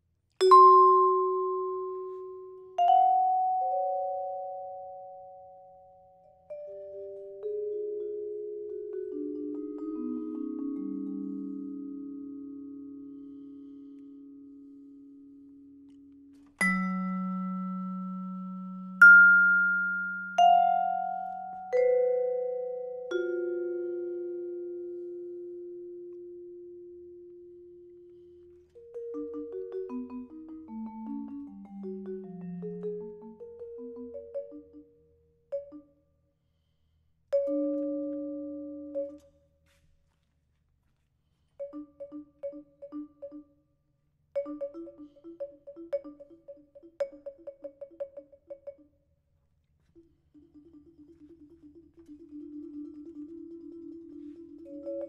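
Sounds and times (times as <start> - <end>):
quick vibraphone mallet run: 0.4 - 12.2, 16.3 - 25.0, 28.5 - 36.0, 41.6 - 43.6, 44.4 - 48.9
vibraphone chord ringing: 0.4 - 14.7, 16.6 - 27.1.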